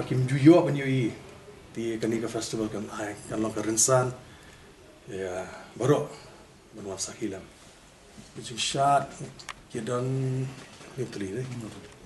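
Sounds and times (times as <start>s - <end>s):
man speaking: 0.0s - 4.2s, 5.0s - 7.6s, 8.2s - 12.0s.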